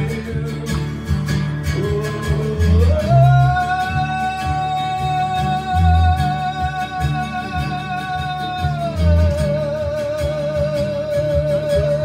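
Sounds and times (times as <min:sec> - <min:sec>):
acoustic guitar: 0:00.0 - 0:12.0
electric bass: 0:00.0 - 0:12.0
person singing long notes: 0:01.7 - 0:12.0.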